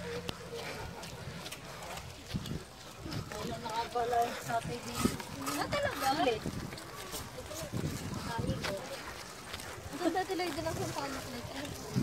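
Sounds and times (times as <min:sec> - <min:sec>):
people talking: 0:03.0 - 0:09.2, 0:09.9 - 0:12.0.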